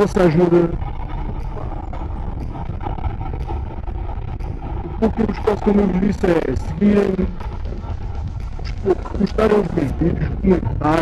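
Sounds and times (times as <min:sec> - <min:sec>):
motorcycle engine drone: 0:00.0 - 0:11.0.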